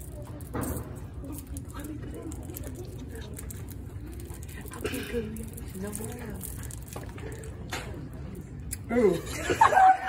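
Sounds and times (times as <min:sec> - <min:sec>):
faint voices: 0:00.0 - 0:09.6.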